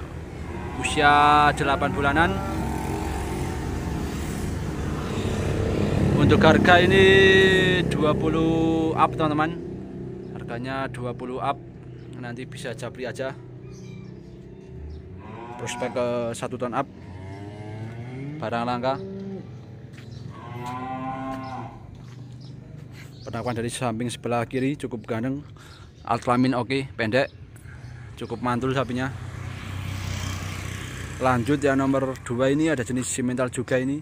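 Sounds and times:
motorcycle engine passing: 0:00.0 - 0:23.3, 0:28.8 - 0:33.1
cattle mooing: 0:00.2 - 0:04.2, 0:15.2 - 0:16.4, 0:17.0 - 0:19.6, 0:20.3 - 0:21.9.

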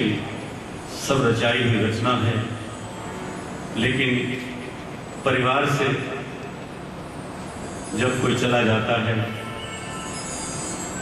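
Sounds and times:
background noise of seated crowd: 0:00.0 - 0:11.0
man speaking: 0:03.8 - 0:04.6, 0:05.3 - 0:06.3, 0:08.0 - 0:09.4.

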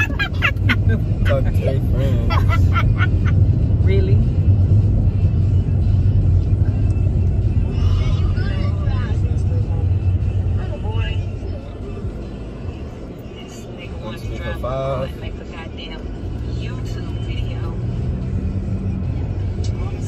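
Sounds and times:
car engine and road rumble: 0:00.0 - 0:20.0
music: 0:02.9 - 0:13.4.

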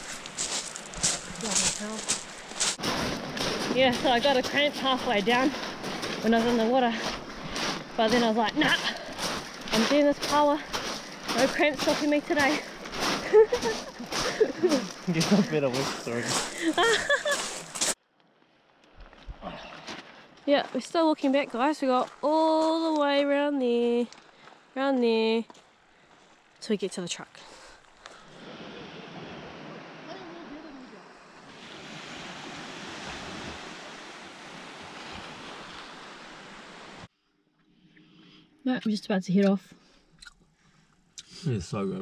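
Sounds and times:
waves washing onto pebbles: 0:00.0 - 0:18.0, 0:28.2 - 0:37.1
laughter: 0:13.2 - 0:15.7, 0:16.6 - 0:17.5.

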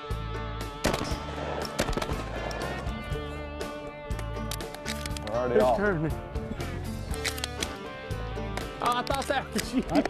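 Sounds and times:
background music: 0:00.0 - 0:10.0
shotgun shots: 0:00.8 - 0:02.9.

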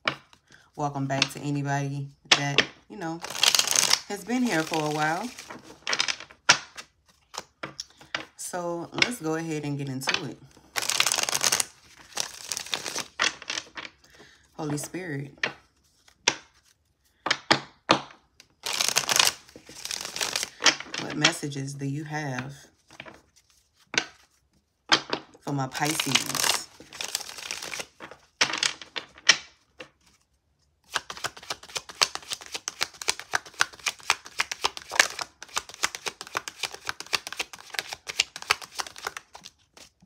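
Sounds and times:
cards clacking: 0:02.6 - 0:08.3, 0:08.9 - 0:21.4, 0:22.9 - 0:30.2, 0:30.8 - 0:40.0
riffle shuffle of cards: 0:03.2 - 0:08.3, 0:10.1 - 0:15.0, 0:18.6 - 0:21.4, 0:25.8 - 0:40.0.

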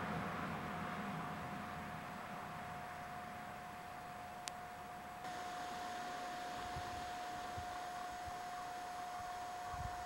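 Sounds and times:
faint steady hiss: 0:00.0 - 0:10.0
high-pitched hum: 0:01.2 - 0:10.0.

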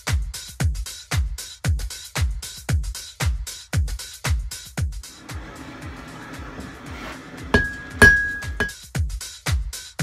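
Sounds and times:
hammer blows on anvil: 0:07.2 - 0:08.8.

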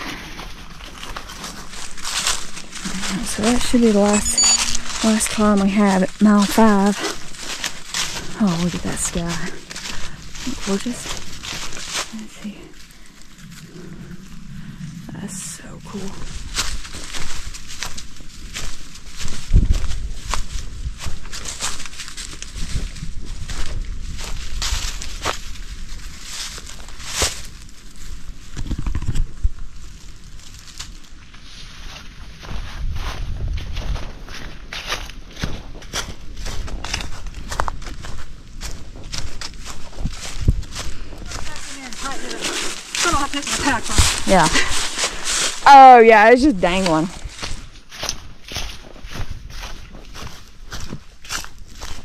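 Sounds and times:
footsteps on forest trail: 0:00.0 - 0:52.0.

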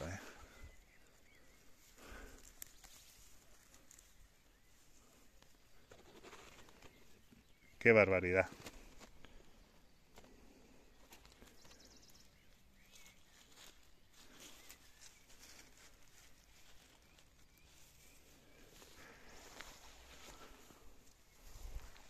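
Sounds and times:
grass and leaves rustling: 0:00.0 - 0:22.0.

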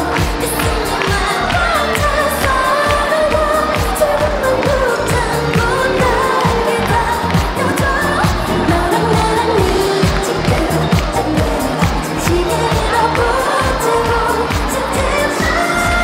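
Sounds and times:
pop song with singing: 0:00.0 - 0:16.0
steady drum beat: 0:00.0 - 0:16.0.

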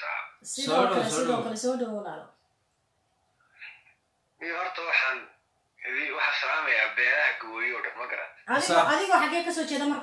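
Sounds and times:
person talking: 0:00.4 - 0:02.2, 0:08.5 - 0:10.0.

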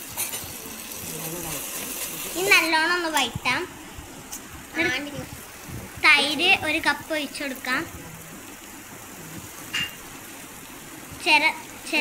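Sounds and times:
food sizzling in a pot: 0:00.0 - 0:12.0.

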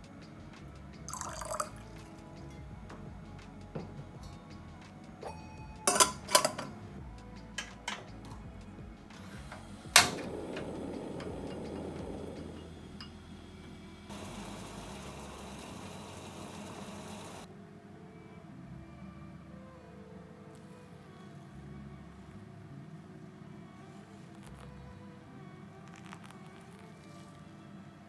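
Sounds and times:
kettle clanking: 0:05.2 - 0:06.8, 0:09.4 - 0:13.2
gas burner hissing: 0:09.1 - 0:17.5.

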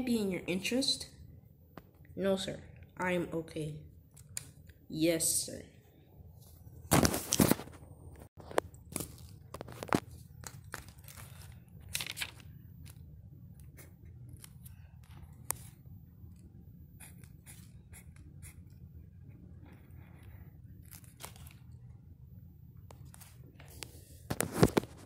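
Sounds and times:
paper rustling: 0:06.9 - 0:07.8, 0:08.4 - 0:13.0, 0:19.6 - 0:21.8, 0:23.0 - 0:25.0
pen scratching on paper: 0:17.0 - 0:20.4.

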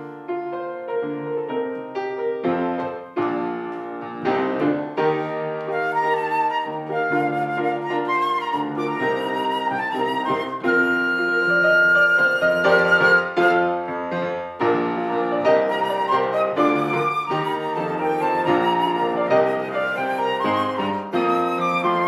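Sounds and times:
grand piano: 0:00.0 - 0:22.0
flute: 0:05.0 - 0:22.0.

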